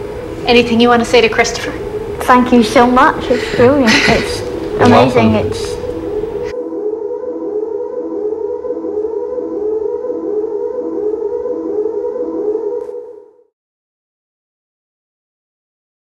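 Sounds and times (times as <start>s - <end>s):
electronic siren tone: 4.2s - 13.5s.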